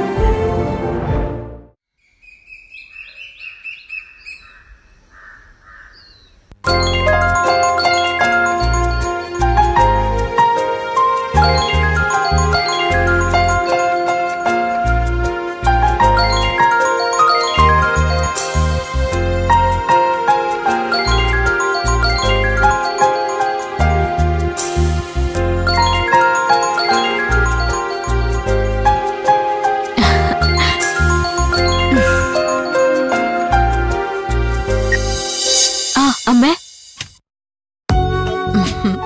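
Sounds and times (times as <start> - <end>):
theme music: 0.0 - 1.8, 6.7 - 36.4
birds chirping: 2.0 - 9.4
tinkling bell-like melody: 6.7 - 10.5, 11.1 - 15.1, 15.9 - 35.7.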